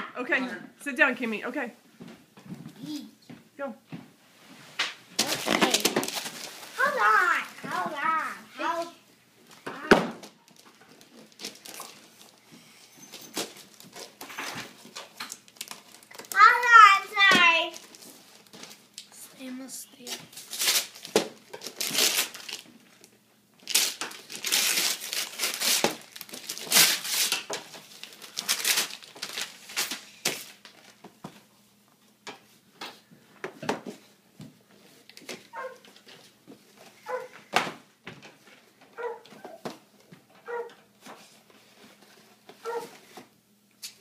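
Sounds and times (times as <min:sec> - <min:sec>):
tissue paper rustling: 0:05.2 - 0:07.6, 0:23.7 - 0:31.0
wrapping paper tearing: 0:05.2 - 0:07.6, 0:10.4 - 0:12.4, 0:13.1 - 0:17.0, 0:20.0 - 0:22.7, 0:23.6 - 0:31.0.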